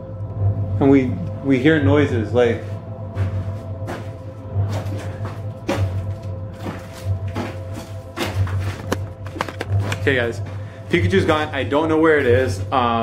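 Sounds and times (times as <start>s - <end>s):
pulsing low bass: 0.0s - 13.0s.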